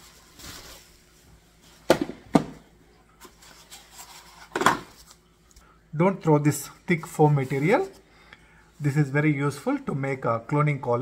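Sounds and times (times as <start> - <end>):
bubble wrap rustling: 0.0 - 1.9
hard plastic knocking on countertop: 1.9 - 2.6.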